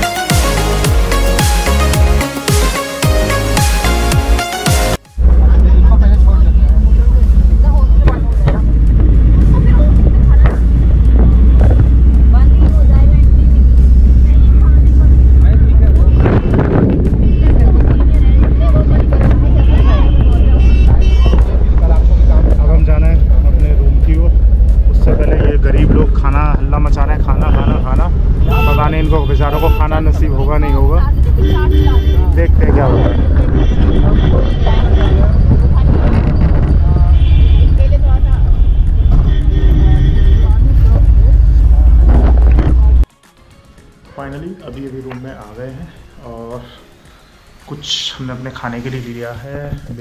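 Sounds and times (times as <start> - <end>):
vehicle engine and road rumble: 0.0 - 43.1, 43.8 - 50.0
passengers talking: 5.2 - 24.1, 24.8 - 43.1
indistinct voices: 5.2 - 43.1
wind on microphone: 15.0 - 22.4, 30.8 - 43.1.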